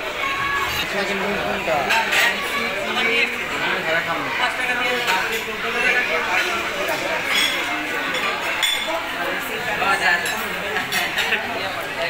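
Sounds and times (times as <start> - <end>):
people chatting: 0.0 - 12.0
cutlery and dishes clinking: 1.8 - 2.6, 4.8 - 9.1, 9.8 - 11.7.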